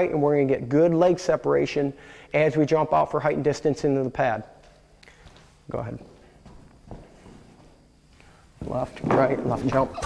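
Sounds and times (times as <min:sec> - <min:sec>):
soft footsteps on synthetic track: 0:04.6 - 0:09.9.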